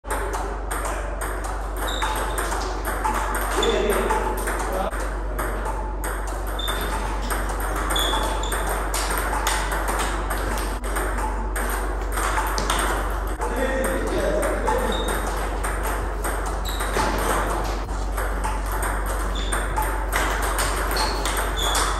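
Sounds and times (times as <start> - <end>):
table tennis ball clicking: 0.1 - 13.4, 18.2 - 21.9
steady low hum: 0.1 - 21.9.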